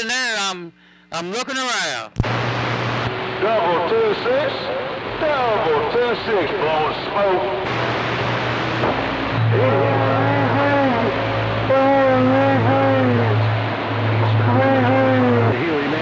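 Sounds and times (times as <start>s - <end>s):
radio static hiss: 0.0s - 16.0s
steady low hum: 0.0s - 16.0s
garbled radio voice: 9.5s - 13.4s.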